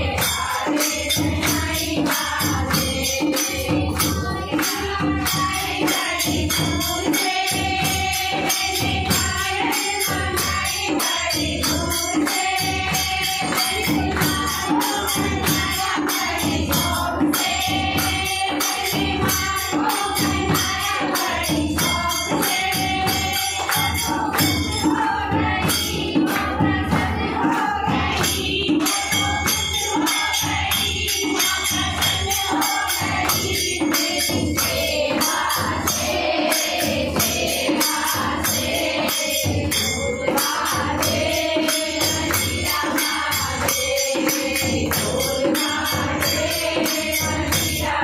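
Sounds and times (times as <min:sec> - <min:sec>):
dholak drum: 0:00.0 - 0:48.0
women singing together: 0:00.0 - 0:48.0
hand clapping: 0:26.4 - 0:29.7.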